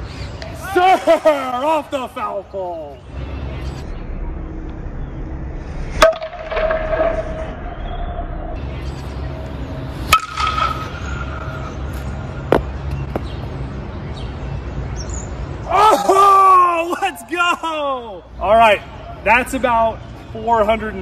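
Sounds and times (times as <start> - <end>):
bat hitting ball crack: 10.1 - 11.5.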